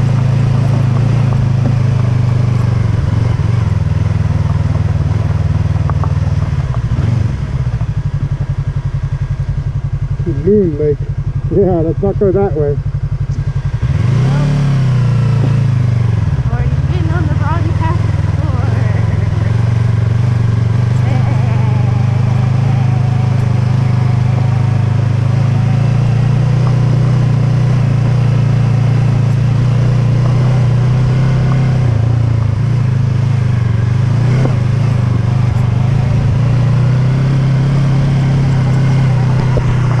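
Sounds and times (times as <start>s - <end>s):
motorcycle engine running: 0.0s - 40.0s.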